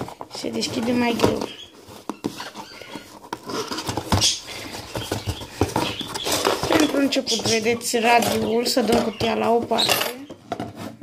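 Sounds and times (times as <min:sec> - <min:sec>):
cardboard flaps scraping: 0:00.0 - 0:09.8.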